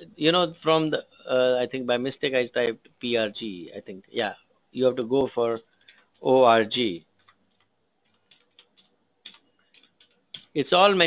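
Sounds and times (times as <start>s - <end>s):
computer keyboard typing: 5.5s - 10.6s.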